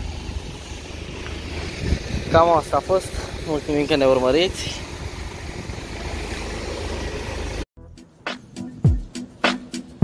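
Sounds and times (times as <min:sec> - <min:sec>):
street traffic noise: 0:00.0 - 0:10.0
intro music with sharp beats: 0:07.8 - 0:10.0.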